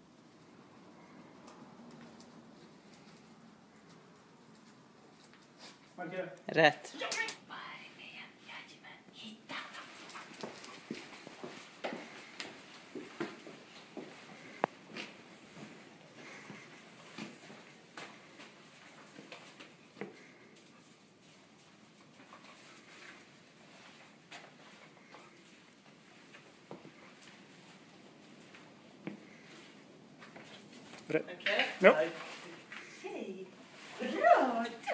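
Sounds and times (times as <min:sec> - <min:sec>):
dog sniffing and panting: 0:09.5 - 0:18.3.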